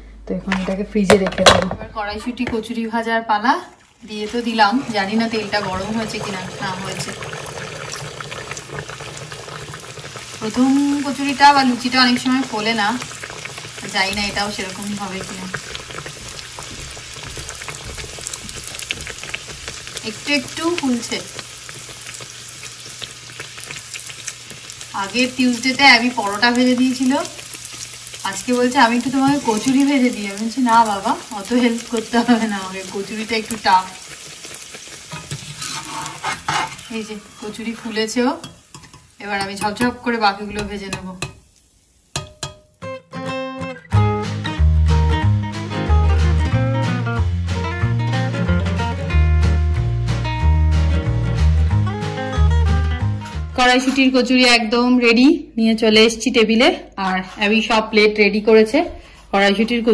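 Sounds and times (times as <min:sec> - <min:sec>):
oil bubbling and crackling: 0:03.7 - 0:42.7
metal skimmer knocking pan: 0:42.1 - 0:42.8.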